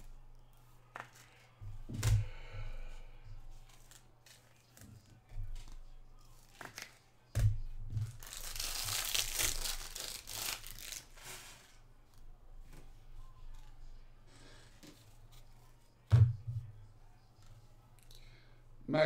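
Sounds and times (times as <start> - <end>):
foil wrapper tearing and crinkling: 8.1 - 11.7.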